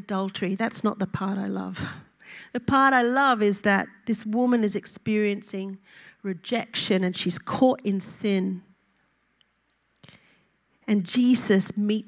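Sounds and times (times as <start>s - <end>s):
woman speaking into microphone: 0.0s - 8.7s, 10.9s - 12.0s.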